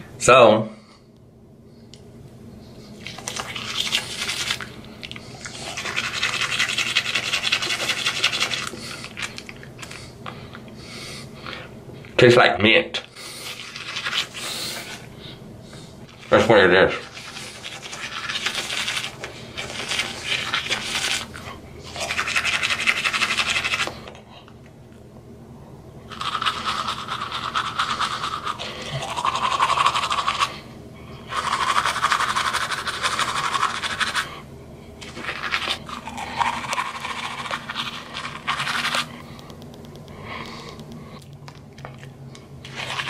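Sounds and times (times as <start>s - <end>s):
toothbrush scrubbing teeth: 2.9s - 10.1s, 13.2s - 15.1s, 16.1s - 24.2s, 26.1s - 30.6s, 31.2s - 34.4s, 35.0s - 39.6s, 41.8s - 43.0s.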